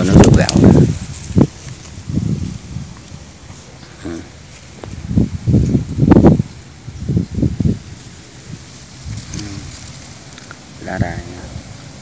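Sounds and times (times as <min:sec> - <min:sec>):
plants rustling against microphone: 0:00.0 - 0:12.0.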